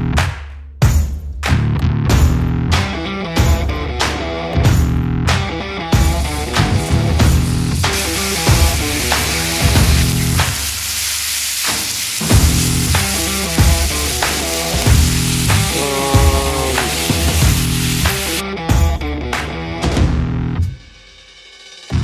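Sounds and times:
rock music with steady beat: 0:00.0 - 0:21.3
meat sizzling on a griddle: 0:06.0 - 0:18.4.

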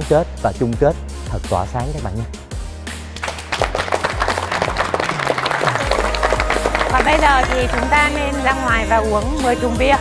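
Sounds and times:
background music with bass line: 0:00.0 - 0:10.0
people clapping: 0:03.1 - 0:08.6.

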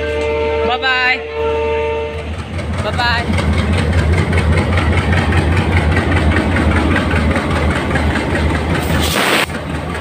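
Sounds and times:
train horn long note: 0:00.0 - 0:02.3
low train rumble: 0:00.0 - 0:10.0.

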